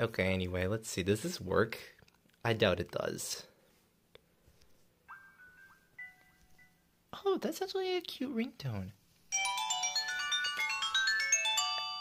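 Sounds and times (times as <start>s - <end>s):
electronic phone ringtone: 5.1s - 6.8s, 9.3s - 12.0s.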